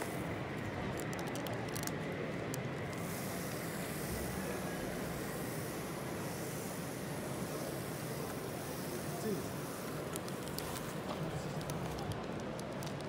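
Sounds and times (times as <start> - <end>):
busy hall hum and hiss: 0.0 - 13.0.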